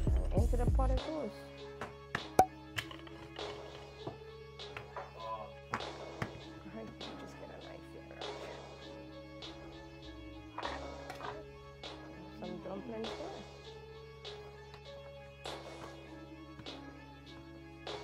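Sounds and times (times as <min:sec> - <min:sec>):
background music held notes: 0:00.0 - 0:18.0.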